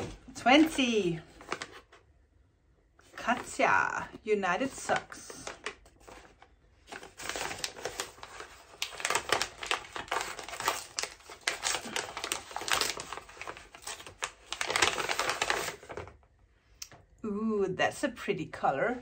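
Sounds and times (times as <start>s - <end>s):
gift wrapping tearing and crinkling: 1.2s - 2.0s, 4.6s - 16.2s.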